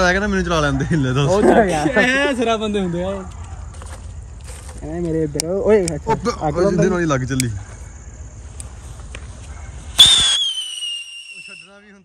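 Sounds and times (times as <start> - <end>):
firework rocket launch burst: 9.9 - 11.6
firework fuse hissing: 9.9 - 11.7
falling whistle of rocket: 10.0 - 11.8.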